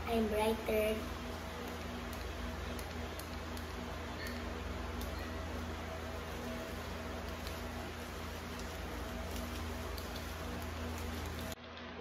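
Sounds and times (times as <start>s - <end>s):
steady background hiss: 0.0s - 11.6s
low steady hum: 0.0s - 12.0s.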